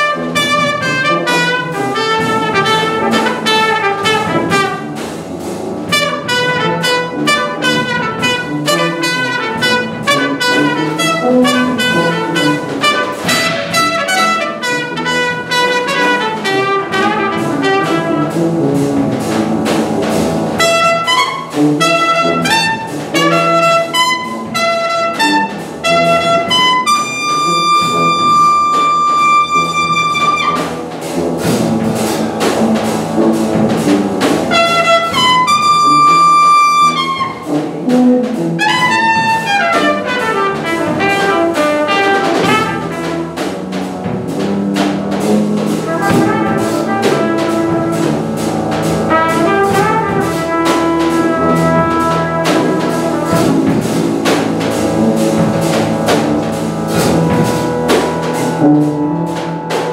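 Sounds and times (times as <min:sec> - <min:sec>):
jazz trumpet playing: 0:00.0 - 0:59.9
other instruments: 0:00.0 - 0:59.9.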